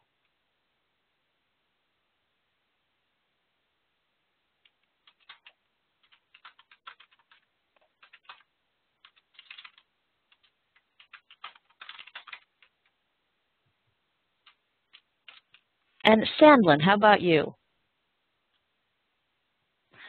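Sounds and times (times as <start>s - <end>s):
faint keyboard typing: 4.6s - 13.0s, 14.3s - 16.7s.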